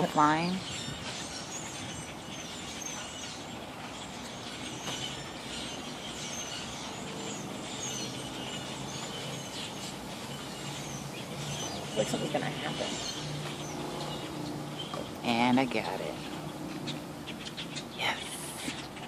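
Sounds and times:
birds chirping: 0.0 - 19.0.

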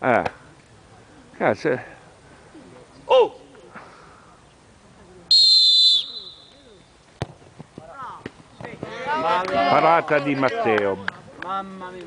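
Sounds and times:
referee's whistle blast: 5.3 - 6.6
ball being kicked: 7.2 - 8.9.

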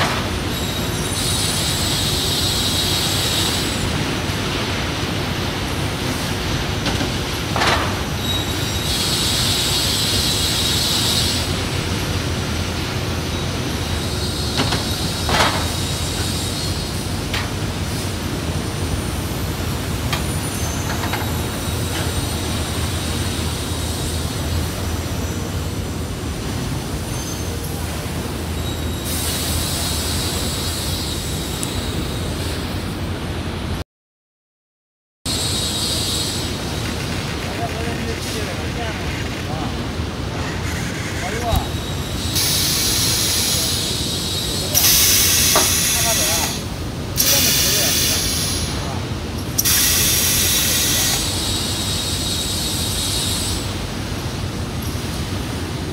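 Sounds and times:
production line machinery humming: 35.3 - 55.9
high hiss: 41.6 - 48.9, 49.5 - 55.6.

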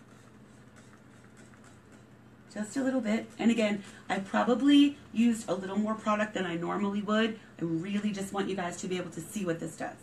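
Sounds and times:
spray bottle squirts: 0.0 - 2.2
low steady hum: 0.0 - 10.0.

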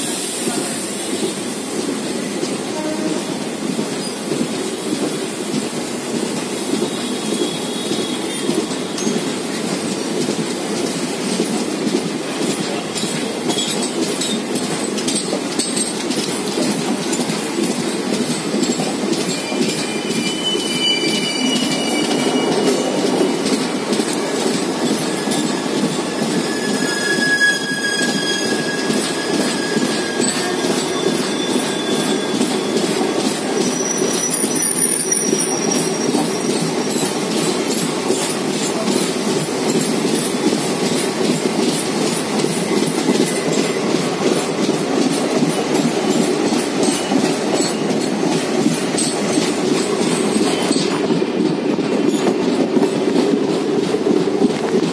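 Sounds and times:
train rumbling on rails: 0.0 - 54.9
wheels clickety-clack: 1.2 - 27.3, 28.6 - 54.9
high wheel squeals: 19.2 - 37.5.

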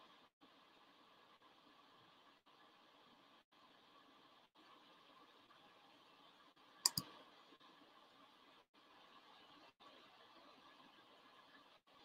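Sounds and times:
sharp clicks: 6.9 - 7.1.

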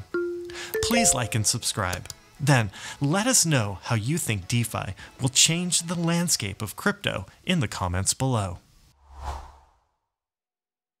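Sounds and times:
whoosh: 9.0 - 9.9.

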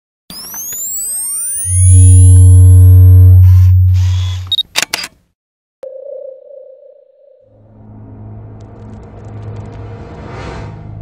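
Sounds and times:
deep bass tone: 1.8 - 4.1
rising whooshing sweeps: 7.6 - 11.0.

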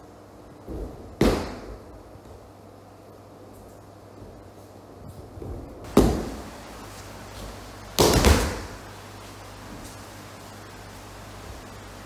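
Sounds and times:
body slapping onto mat: 0.7 - 1.9, 8.0 - 8.8.

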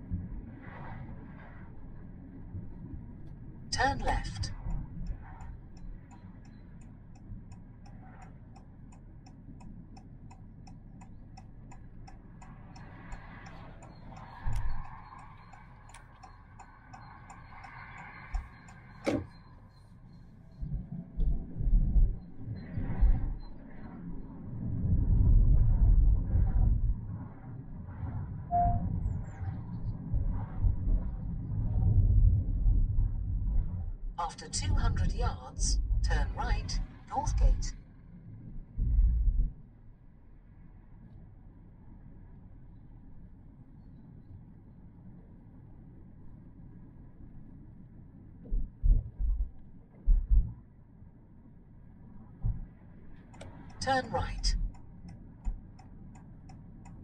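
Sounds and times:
car cabin rumble: 18.0 - 19.4.

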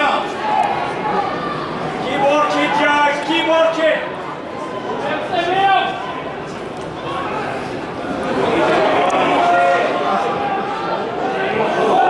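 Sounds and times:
stadium background noise: 0.0 - 12.0.

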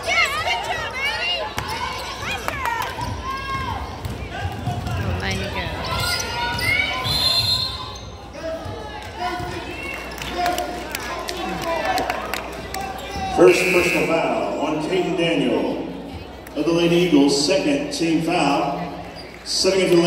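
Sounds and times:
people calling out: 13.0 - 14.5.

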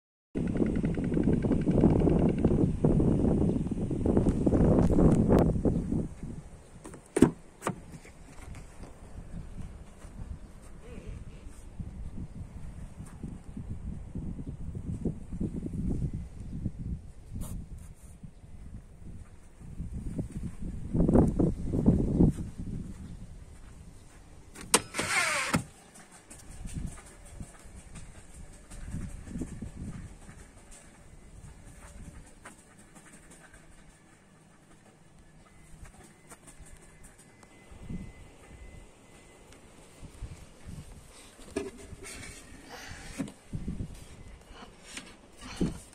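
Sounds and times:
wind buffeting microphone: 0.4 - 6.8, 8.3 - 24.5, 26.4 - 32.5, 40.0 - 44.4.

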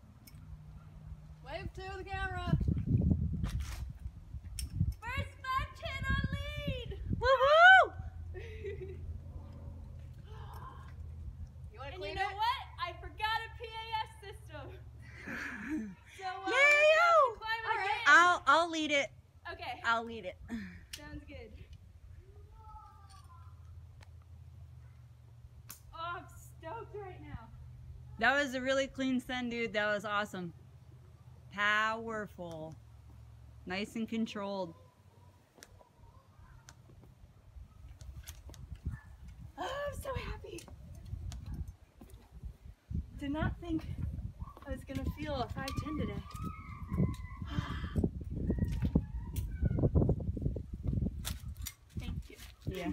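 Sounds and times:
low steady rumble: 4.0 - 34.2.

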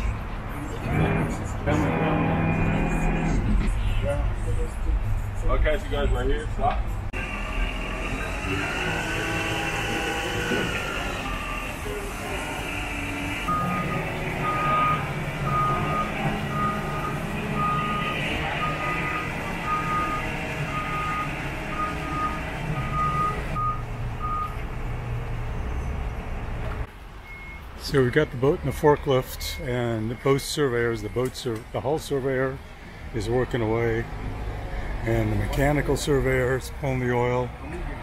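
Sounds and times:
forklift engine running: 0.1 - 3.8, 7.1 - 27.6
reversing alarm beeping: 7.2 - 24.6, 27.2 - 27.7.

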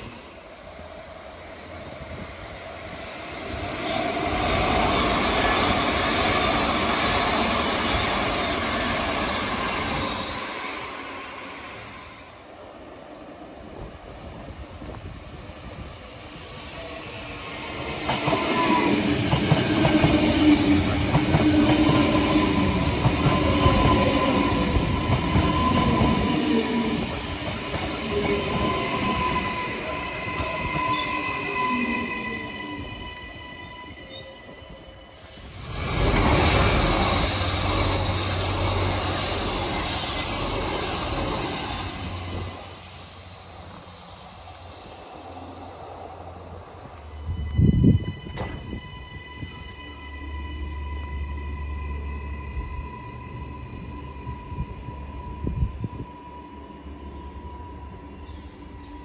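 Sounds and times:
train wheels rumbling on rails: 13.7 - 49.9.

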